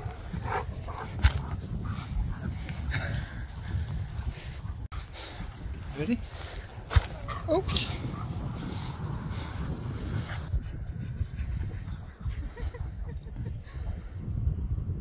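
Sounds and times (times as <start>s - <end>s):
wind rumble on microphone: 0.0s - 15.0s.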